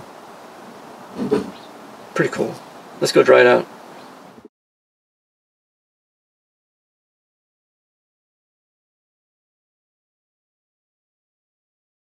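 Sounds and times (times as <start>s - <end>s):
low steady hiss: 0.0s - 4.5s.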